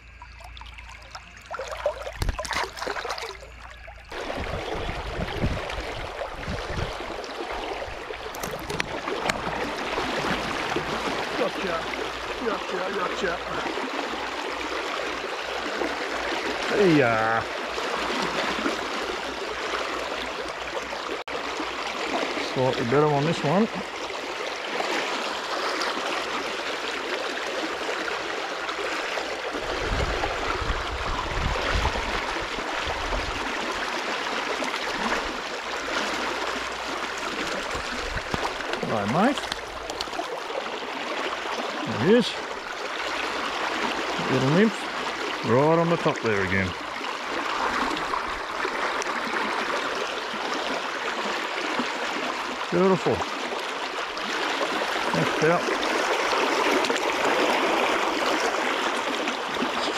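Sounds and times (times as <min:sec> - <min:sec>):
river rushing over stones: 0:24.2 - 0:59.9.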